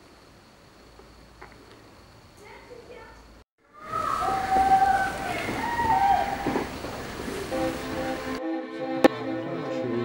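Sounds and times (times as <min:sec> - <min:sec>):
background music with held notes: 0:07.5 - 0:10.0.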